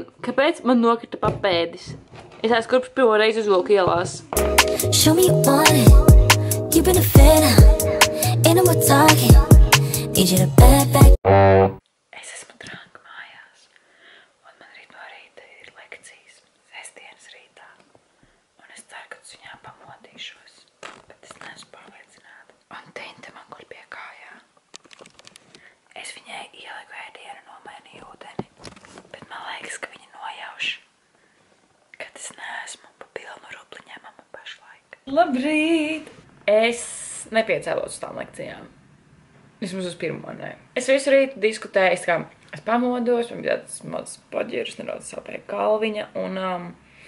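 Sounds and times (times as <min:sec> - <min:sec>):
woman whispering: 0:12.1 - 0:13.7, 0:14.4 - 0:17.8, 0:18.6 - 0:24.5, 0:25.9 - 0:28.5, 0:29.1 - 0:30.9, 0:32.0 - 0:35.1.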